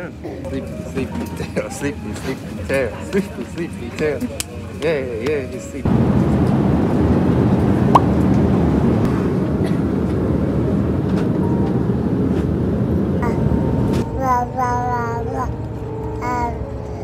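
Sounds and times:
light background music: 0.0s - 5.9s, 10.4s - 17.0s
airliner cabin hum: 0.3s - 14.2s.

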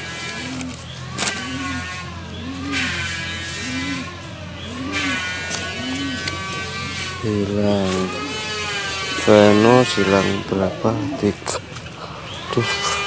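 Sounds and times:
engine running cyclically: 0.0s - 13.0s
steady low hum: 0.0s - 13.0s.

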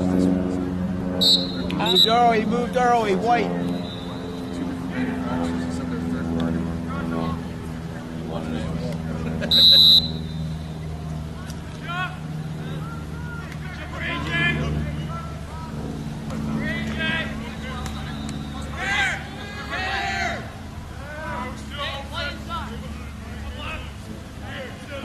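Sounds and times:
steady low hum: 0.0s - 25.0s
players and spectators shouting: 9.5s - 25.0s.

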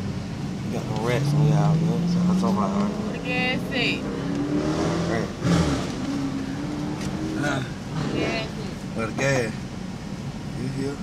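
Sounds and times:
motor vehicle hum: 0.0s - 11.0s
indistinct talking: 0.8s - 4.2s, 7.3s - 9.5s.

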